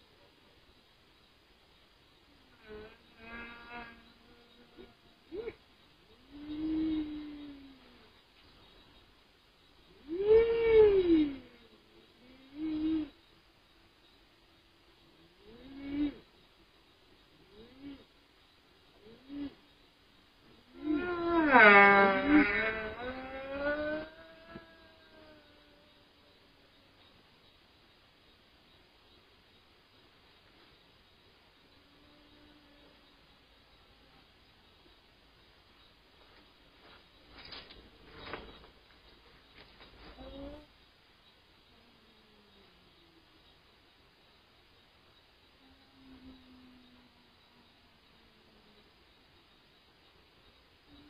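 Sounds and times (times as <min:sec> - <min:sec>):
voice-like moaning wails: 0:10.1 - 0:11.6, 0:20.8 - 0:26.5.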